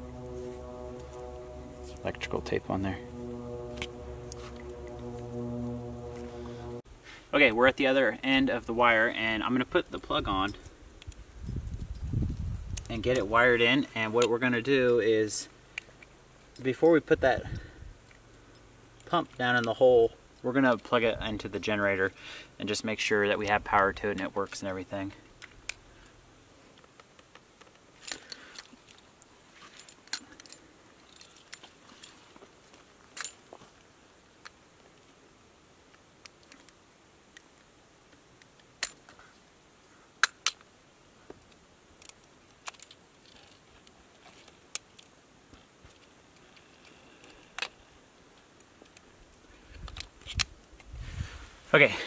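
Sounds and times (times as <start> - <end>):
small sharp plastic clicks: 40.2 - 40.7.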